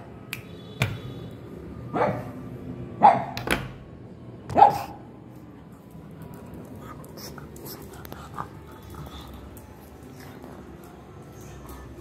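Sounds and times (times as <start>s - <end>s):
dog barking: 1.9s - 2.4s, 3.0s - 3.4s, 4.5s - 5.0s.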